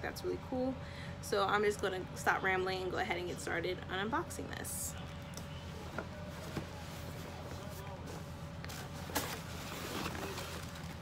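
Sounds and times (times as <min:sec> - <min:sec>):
steady low hum: 0:00.0 - 0:11.0
cardboard box being opened: 0:08.8 - 0:11.0.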